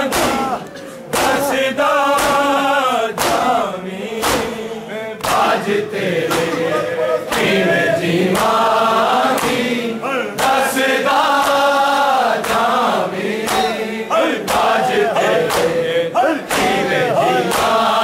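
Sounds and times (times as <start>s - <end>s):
hand slaps on bare chests: 0.0s - 4.6s, 5.2s - 5.6s, 6.2s - 6.6s, 8.3s - 8.6s, 9.3s - 9.6s, 10.4s - 10.7s, 12.4s - 12.8s, 13.4s - 17.9s
men chanting a lament: 0.0s - 18.0s.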